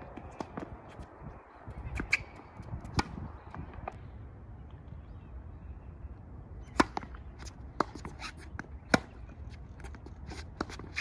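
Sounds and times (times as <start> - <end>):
racket hitting tennis ball: 6.6 - 9.3
tennis ball bouncing: 6.6 - 11.0.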